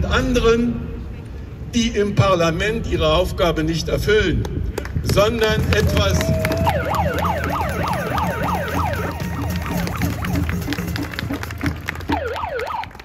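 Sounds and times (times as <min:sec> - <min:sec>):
siren wailing: 0:06.1 - 0:11.4, 0:12.0 - 0:13.0.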